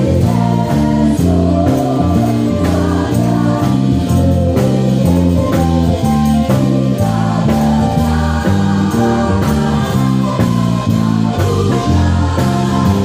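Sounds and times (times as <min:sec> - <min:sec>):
drum kit: 0:00.0 - 0:13.0
electric bass: 0:00.0 - 0:13.0
group singing: 0:00.0 - 0:13.0.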